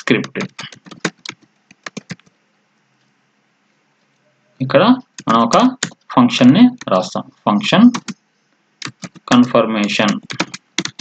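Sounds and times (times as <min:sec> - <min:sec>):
person speaking: 0:00.0 - 0:02.2, 0:04.6 - 0:08.2, 0:08.8 - 0:11.0
computer keyboard typing: 0:00.0 - 0:02.4, 0:05.1 - 0:06.0, 0:07.8 - 0:08.2, 0:08.8 - 0:11.0.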